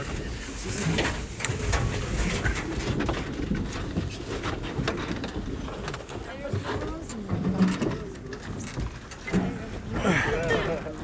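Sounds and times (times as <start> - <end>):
knocks and rustles: 0.0 - 9.9.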